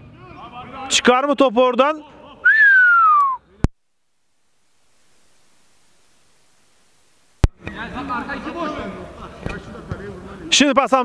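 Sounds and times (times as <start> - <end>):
faint hiss: 2.3 - 10.6
descending whistled note: 2.5 - 3.4.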